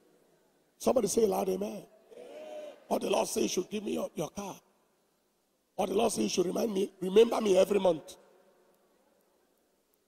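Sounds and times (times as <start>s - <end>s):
man's amplified voice: 0.8s - 4.7s, 5.8s - 8.4s.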